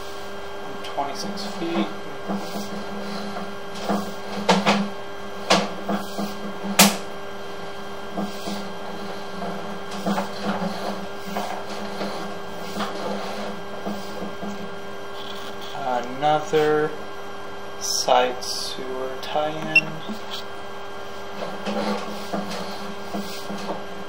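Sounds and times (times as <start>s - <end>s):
steady hum: 0.0s - 24.0s.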